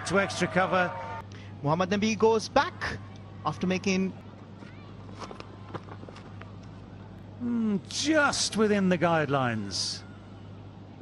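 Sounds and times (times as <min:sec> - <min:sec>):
soft crowd murmur: 0:02.7 - 0:07.9.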